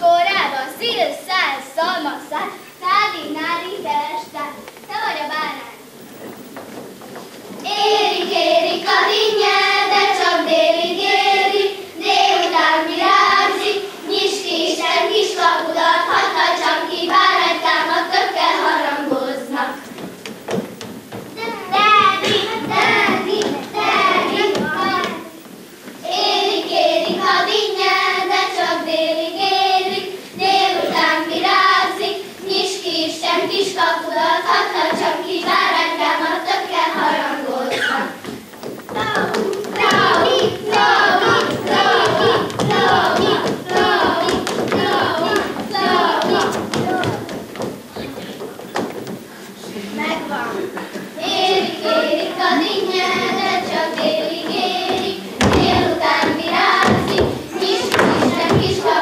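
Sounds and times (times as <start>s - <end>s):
faint dance steps on stage: 2.4s - 59.0s
girls singing folk song: 5.8s - 59.0s.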